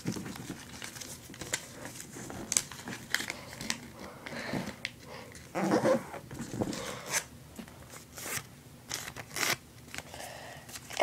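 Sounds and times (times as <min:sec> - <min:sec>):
paper rustling and crinkling: 0:00.0 - 0:04.0, 0:10.7 - 0:11.0.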